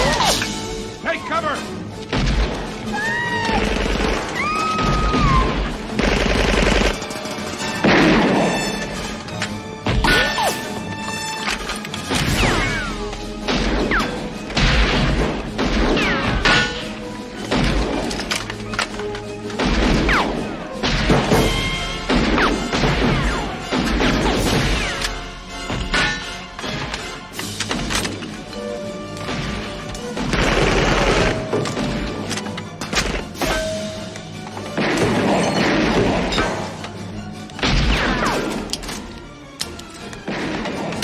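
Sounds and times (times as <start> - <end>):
film music: 0.0 - 41.0
gunshots: 3.5 - 8.8, 12.0 - 18.2, 19.5 - 28.1, 29.2 - 32.0.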